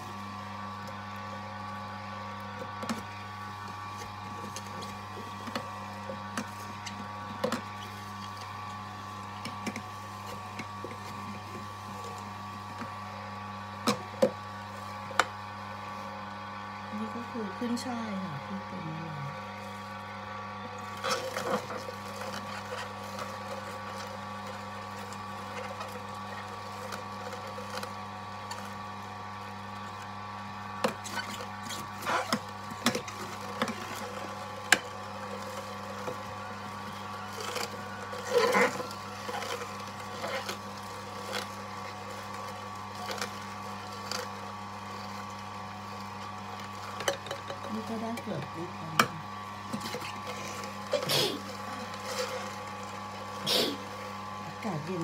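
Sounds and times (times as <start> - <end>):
juicer motor humming: 0.0 - 55.0.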